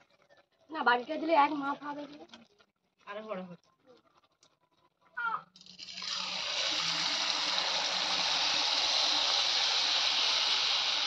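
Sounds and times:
batter sizzling in hot oil: 0:05.6 - 0:11.0.

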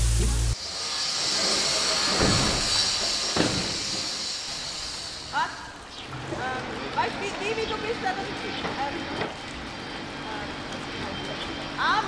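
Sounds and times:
building site hum: 0:00.0 - 0:12.0.

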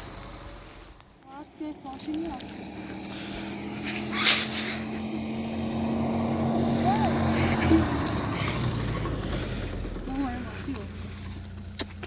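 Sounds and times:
car approaching engine and tyre hum: 0:00.0 - 0:12.0.

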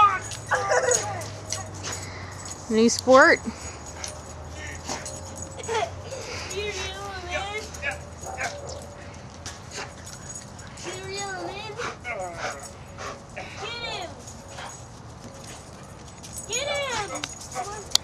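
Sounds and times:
dog whining and yipping: 0:00.0 - 0:02.2, 0:03.7 - 0:09.0.

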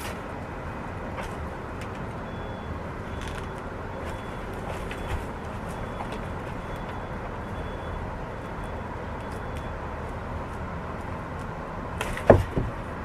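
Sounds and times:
city background hum: 0:00.0 - 0:13.0.

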